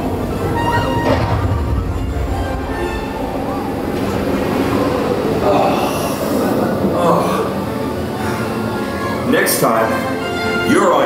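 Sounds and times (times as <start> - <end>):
ride vehicle rumbling on track: 0.0 - 9.3.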